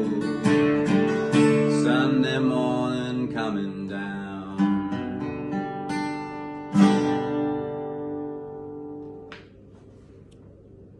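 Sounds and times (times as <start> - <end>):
man singing wordless note: 0.0 - 0.5, 1.5 - 4.9
acoustic guitar ringing: 0.0 - 9.4.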